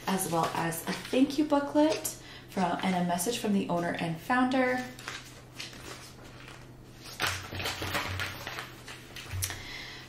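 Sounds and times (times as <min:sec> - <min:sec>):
paper and plastic rustling: 0:00.0 - 0:02.0, 0:04.6 - 0:09.6.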